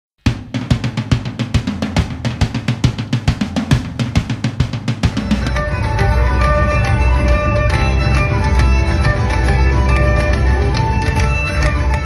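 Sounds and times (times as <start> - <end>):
drums beating fast pattern: 0.2 - 12.0
band playing live music: 3.6 - 12.0.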